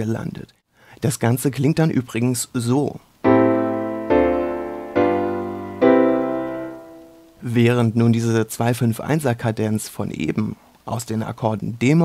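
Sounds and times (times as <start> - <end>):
keyboard chords: 3.2 - 7.3.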